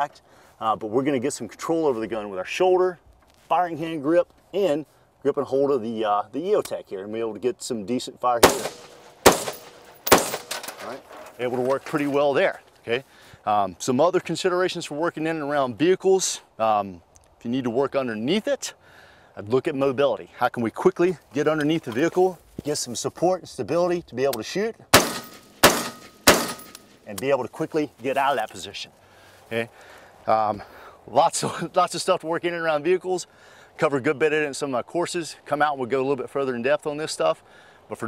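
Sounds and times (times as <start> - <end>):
rifle shots: 8.4 - 10.9, 25.0 - 27.0.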